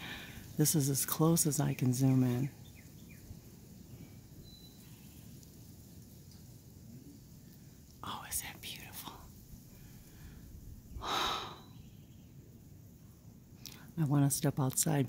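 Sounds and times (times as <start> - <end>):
low background rumble: 0.0 - 15.0
faint breathy whispering: 8.0 - 9.4.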